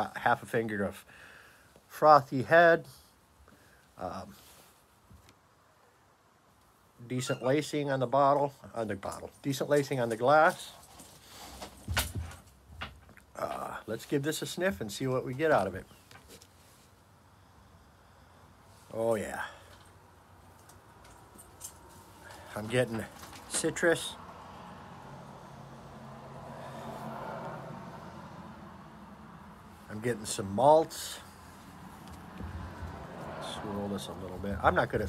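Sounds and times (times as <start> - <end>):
distant road traffic: 0.0 - 35.0
dull thump: 32.4 - 33.2.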